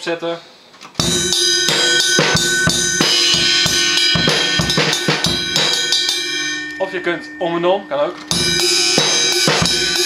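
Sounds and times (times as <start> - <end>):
crash cymbal ringing: 1.0 - 10.0.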